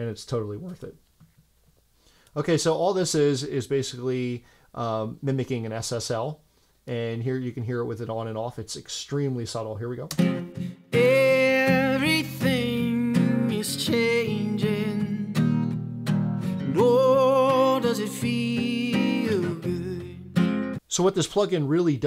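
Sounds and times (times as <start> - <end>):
acoustic guitar: 10.1 - 20.8
person singing: 10.4 - 20.5.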